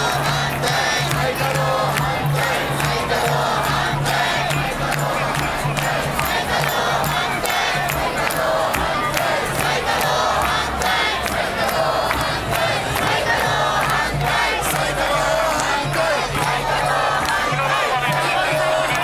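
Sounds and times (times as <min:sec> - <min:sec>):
protest crowd chanting and shouting: 0:00.0 - 0:19.0.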